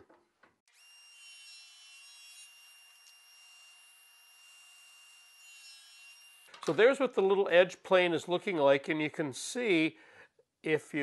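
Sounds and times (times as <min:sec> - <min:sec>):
faint table saw whine: 0:00.7 - 0:06.5.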